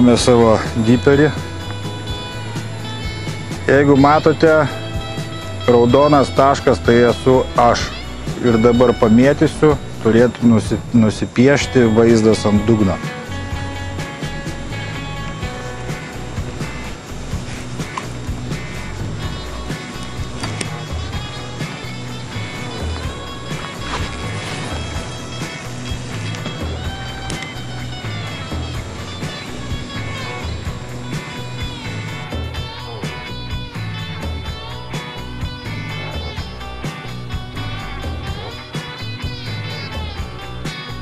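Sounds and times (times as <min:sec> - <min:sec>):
background music: 0:00.0 - 0:41.0.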